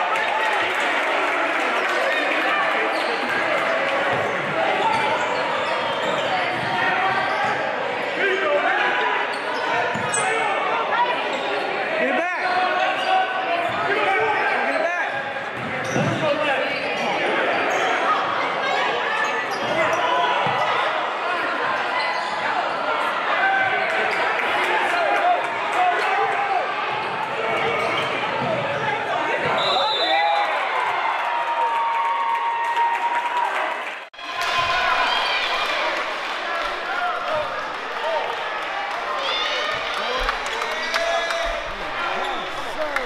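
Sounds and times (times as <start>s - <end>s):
shouting and chatter: 0.0s - 43.0s.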